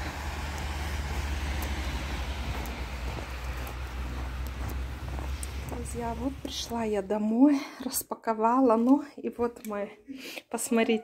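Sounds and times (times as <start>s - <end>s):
road traffic rumble: 0.0s - 7.4s.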